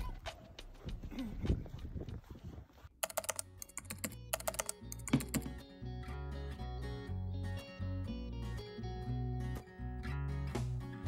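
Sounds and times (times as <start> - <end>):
keyboard typing clicks: 3.0 - 5.6
background music with bass line: 4.2 - 11.0.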